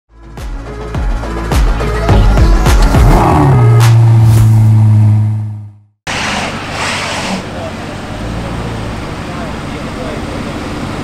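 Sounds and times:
held low bass tone: 0:02.1 - 0:06.0
traffic noise: 0:03.6 - 0:11.0.

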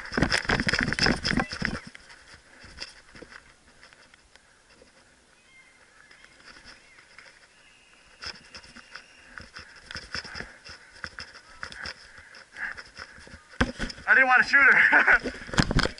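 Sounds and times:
gear rattling: 0:00.0 - 0:04.9.

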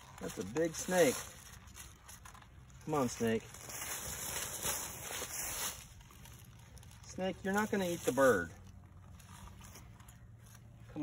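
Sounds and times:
wings flapping in dry leaves: 0:00.0 - 0:08.3.

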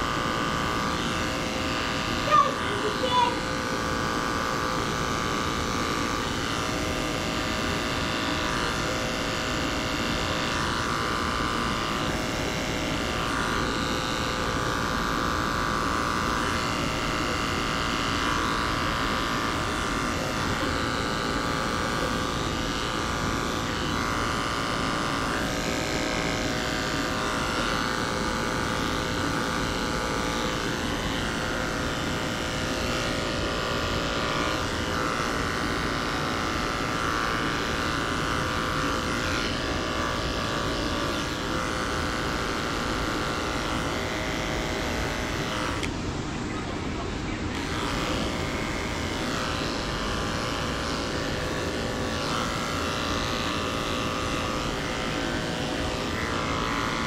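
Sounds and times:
electric clippers humming: 0:00.0 - 0:57.0.

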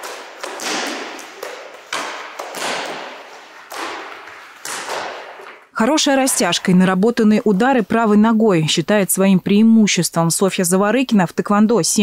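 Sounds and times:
kicks slapping kick paddles: 0:00.0 - 0:05.7.

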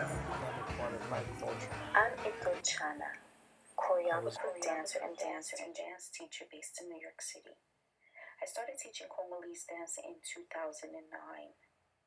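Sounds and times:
background music: 0:00.0 - 0:02.8
faint mixed voices: 0:00.0 - 0:03.2, 0:03.8 - 0:05.4.

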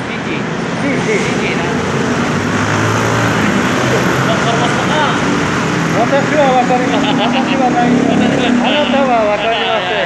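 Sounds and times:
cars and motorcycles driving: 0:00.0 - 0:10.0.

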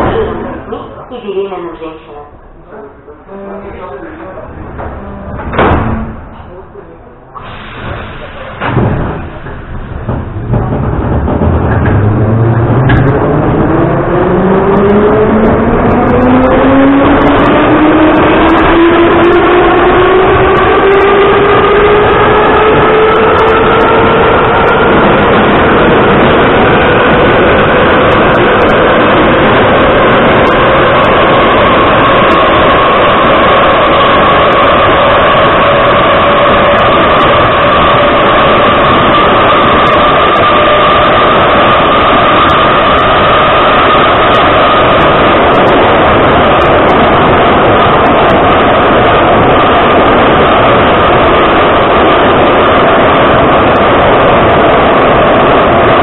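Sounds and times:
train wheels rolling on rails: 0:00.0 - 0:56.0
train motor whine: 0:07.3 - 0:56.0.

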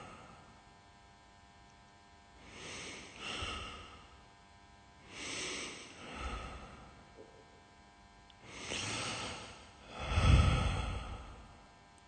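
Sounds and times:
slow heavy breathing: 0:00.0 - 0:00.6, 0:02.4 - 0:04.3, 0:05.0 - 0:07.2, 0:08.4 - 0:11.6.

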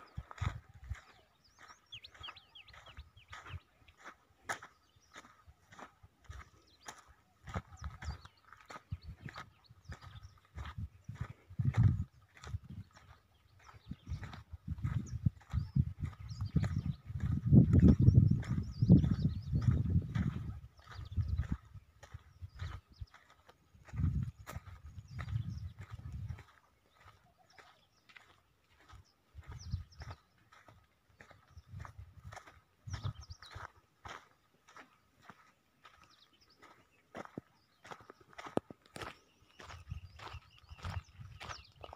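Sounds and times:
wind rumble on microphone: 0:00.0 - 0:03.6, 0:05.2 - 0:33.7, 0:38.4 - 0:41.9
footsteps on dry soil and grass: 0:00.0 - 0:41.9.

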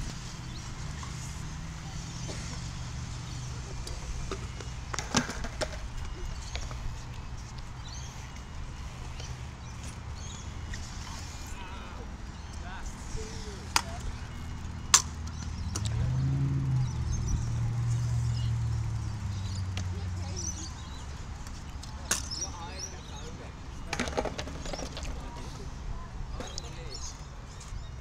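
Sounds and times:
road traffic rumble: 0:00.0 - 0:28.0.

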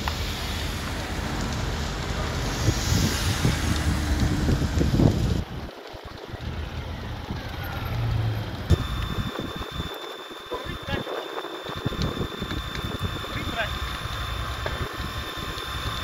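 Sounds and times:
low engine-like rumble: 0:00.0 - 0:16.0
wind buffeting microphone: 0:02.0 - 0:16.0.

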